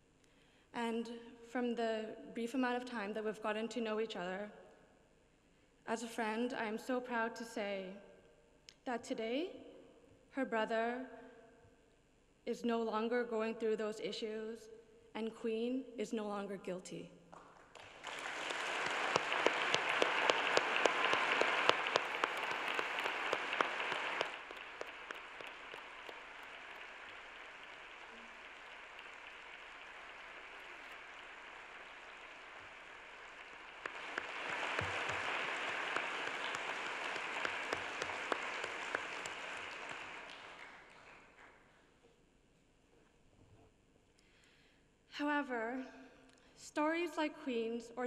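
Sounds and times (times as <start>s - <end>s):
audience applauding: 17.4s - 41.6s.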